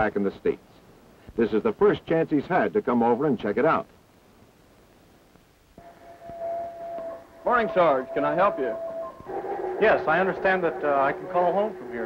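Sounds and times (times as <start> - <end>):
faint hiss: 0.0 - 12.0
steady single-pitched tone: 5.8 - 12.0.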